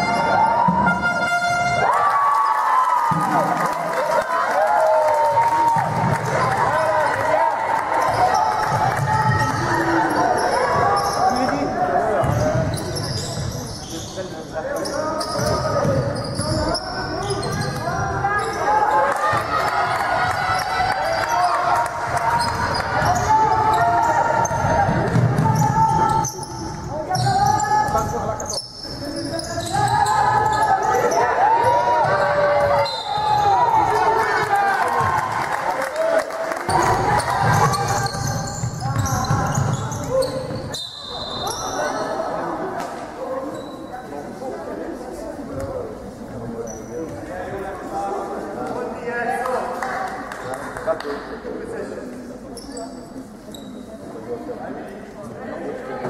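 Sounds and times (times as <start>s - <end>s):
players' voices calling out: 5.8s - 36.0s.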